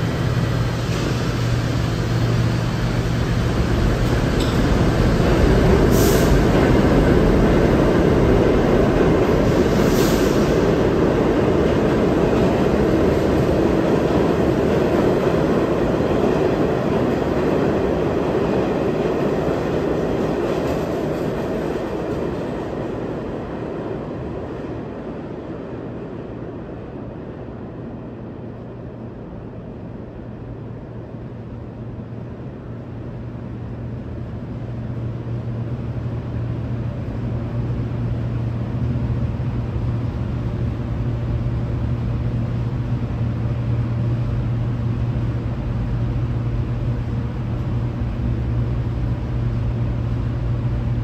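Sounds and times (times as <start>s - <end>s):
train wheels rumbling on rails: 0.0s - 51.0s.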